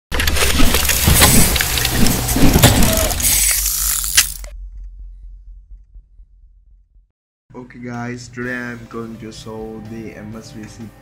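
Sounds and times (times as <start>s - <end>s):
clanking gears and ratcheting machinery: 0.1s - 5.0s
low rumble: 0.7s - 7.1s.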